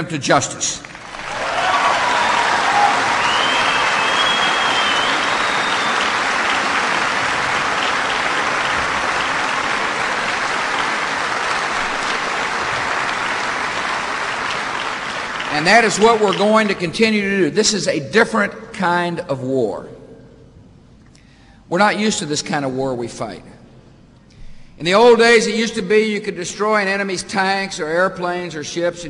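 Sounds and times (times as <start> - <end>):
audience applauding: 0.8 - 16.8
whistle: 3.1 - 6.2.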